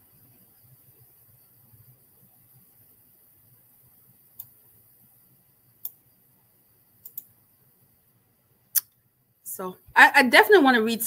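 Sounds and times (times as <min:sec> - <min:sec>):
small sharp clicks: 0:04.3 - 0:04.6, 0:05.8 - 0:06.0, 0:07.0 - 0:07.4, 0:08.7 - 0:09.0.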